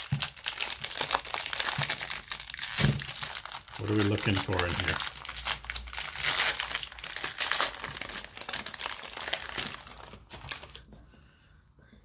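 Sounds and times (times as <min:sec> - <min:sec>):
plastic wrapper crinkling: 0:00.0 - 0:10.9.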